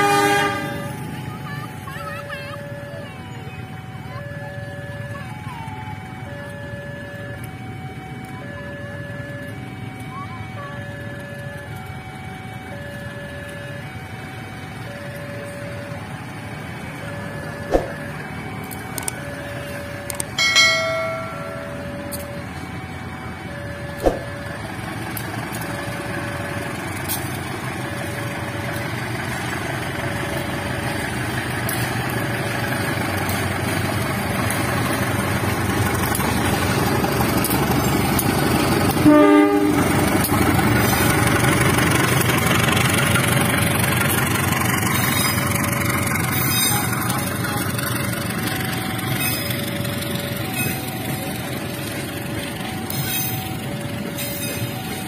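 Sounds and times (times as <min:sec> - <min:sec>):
train horn: 0:00.0 - 0:01.0, 0:38.9 - 0:40.0
diesel locomotive rumble: 0:00.0 - 0:55.0
level crossing two-note chime: 0:20.4 - 0:22.4.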